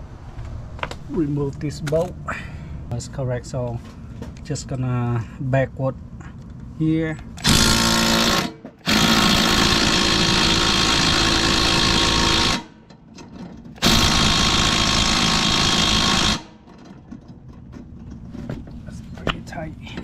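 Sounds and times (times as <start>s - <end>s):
impact driver hammering: 7.4s - 12.9s, 13.8s - 16.7s.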